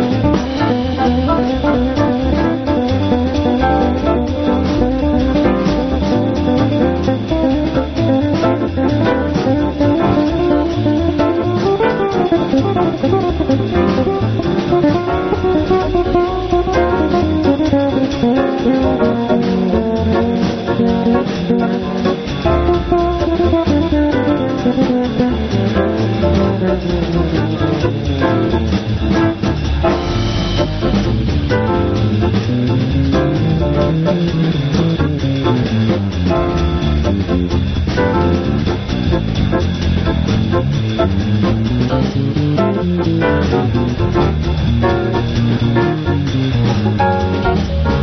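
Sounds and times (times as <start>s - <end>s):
drum kit keeping time: 0.0s - 48.0s
electric bass jazz line: 0.0s - 48.0s.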